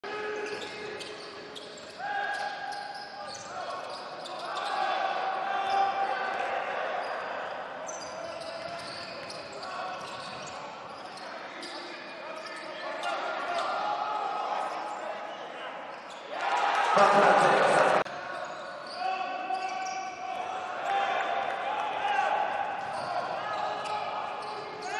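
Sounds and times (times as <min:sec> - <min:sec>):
voices calling out echoing: 0:16.3 - 0:24.9.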